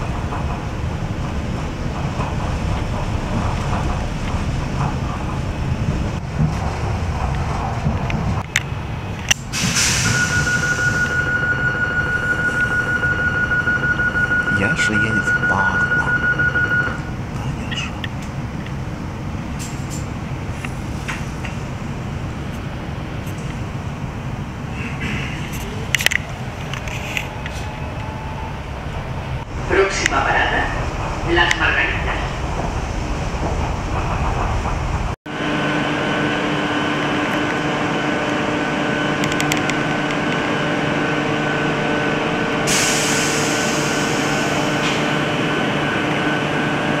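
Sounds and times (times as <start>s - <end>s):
train cabin rumble: 0.0s - 47.0s
train hiss: 9.4s - 11.2s, 42.6s - 45.1s.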